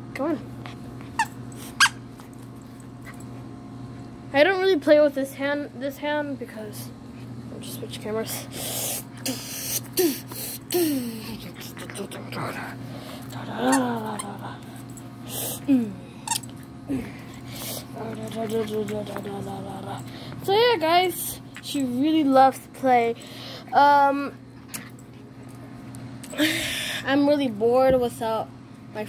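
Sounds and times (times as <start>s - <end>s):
puppy whining: 1.0s - 2.1s.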